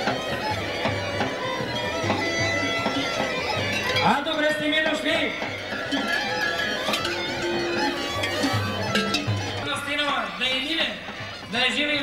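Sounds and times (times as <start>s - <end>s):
plucked string instrument: 0.0s - 12.0s.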